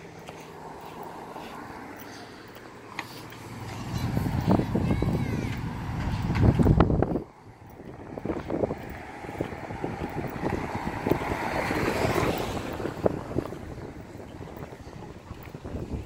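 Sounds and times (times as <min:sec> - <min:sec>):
street noise: 0:00.0 - 0:16.0
wind buffeting microphone: 0:03.2 - 0:16.0.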